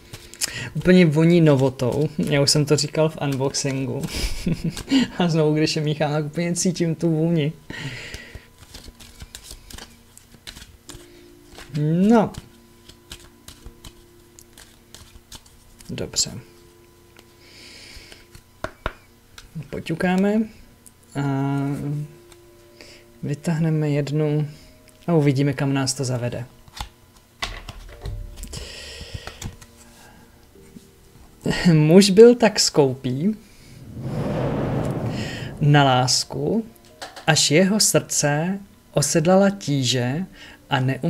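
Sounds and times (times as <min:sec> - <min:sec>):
papery card sliding rustle: 0:08.6 - 0:11.0
cards being shuffled: 0:08.6 - 0:15.9.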